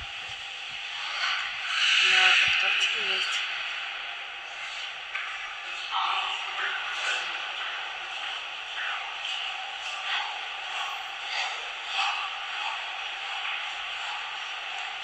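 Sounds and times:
large hall background hiss: 0:00.0 - 0:15.0.

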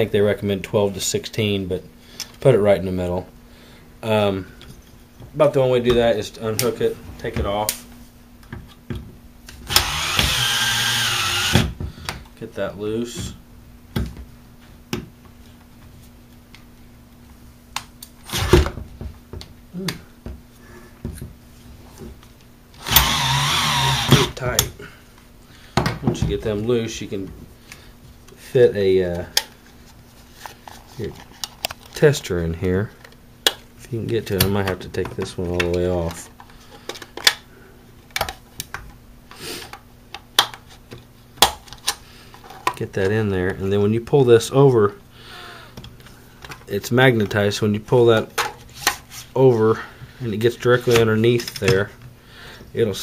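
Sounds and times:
power screwdriver whining: 0:09.7 - 0:11.7, 0:22.8 - 0:24.4.

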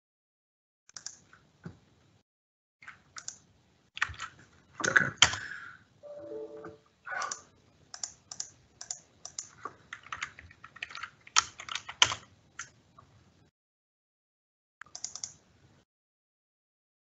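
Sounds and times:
brief low tone: 0:06.0 - 0:06.9
typing on computer keyboard: 0:08.0 - 0:12.7, 0:14.9 - 0:15.4.

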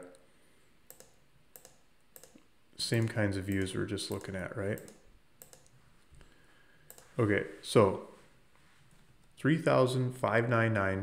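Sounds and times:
computer mouse clicks: 0:00.9 - 0:05.8, 0:06.9 - 0:07.1.

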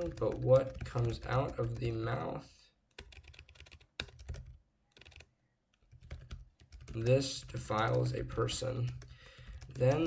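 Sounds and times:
computer keyboard typing: 0:00.0 - 0:02.2, 0:02.9 - 0:10.0.

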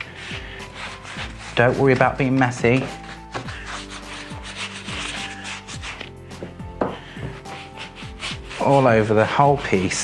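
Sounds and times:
wax brush scrubbing fabric: 0:00.0 - 0:06.1, 0:07.3 - 0:10.0
background music: 0:00.0 - 0:10.0.

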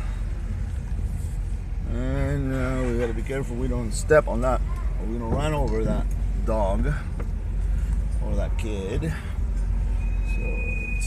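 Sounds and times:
rumble of driving on dirt: 0:00.0 - 0:11.0.

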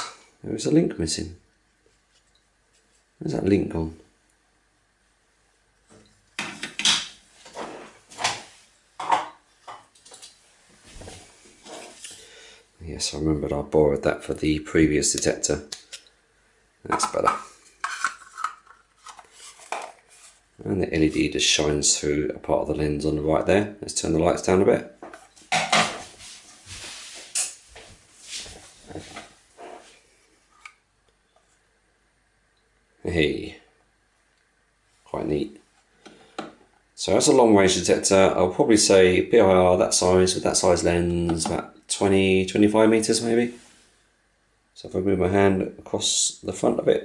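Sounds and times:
plastic housing handling rustles: 0:17.0 - 0:20.4.

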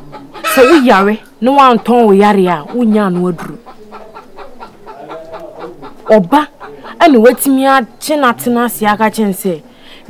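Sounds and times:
chickens clucking: 0:00.0 - 0:09.7
light yard noise: 0:00.0 - 0:10.0.

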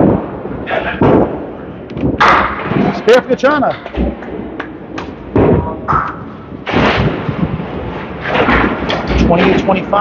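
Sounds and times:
bowling balls crashing into pins: 0:03.9 - 0:09.7.

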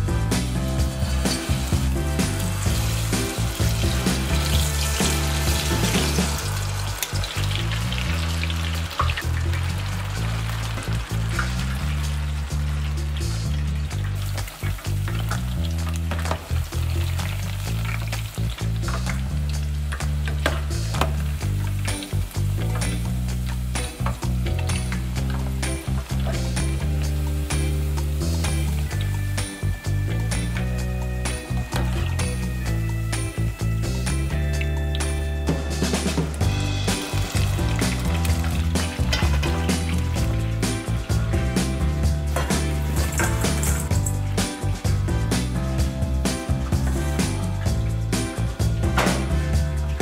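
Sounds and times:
background music with bassline: 0:00.0 - 0:50.0
battered vegetables deep-frying in oil: 0:00.0 - 0:50.0.

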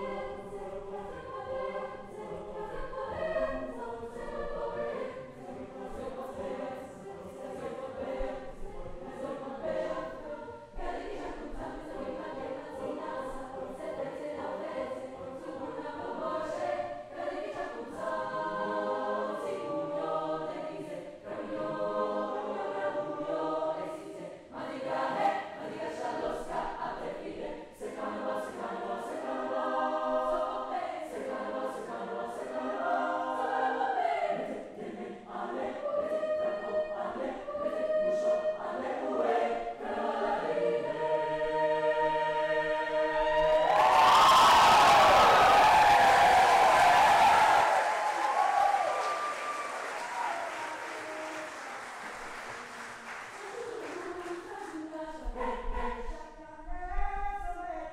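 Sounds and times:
mixed choir singing: 0:00.0 - 0:57.0.

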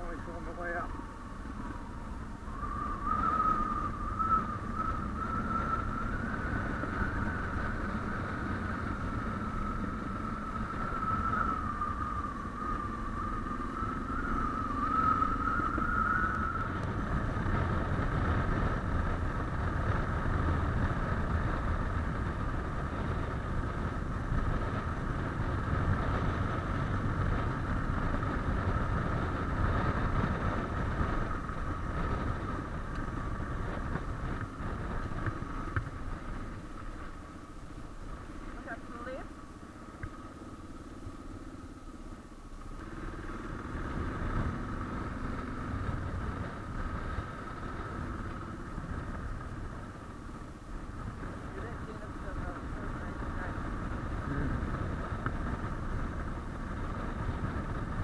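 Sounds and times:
motorcycle engine running: 0:00.0 - 0:58.0
road and wind noise: 0:00.0 - 0:58.0.

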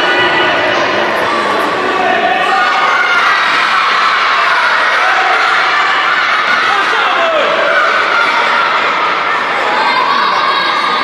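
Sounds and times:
children shouting and cheering: 0:00.0 - 0:11.0.

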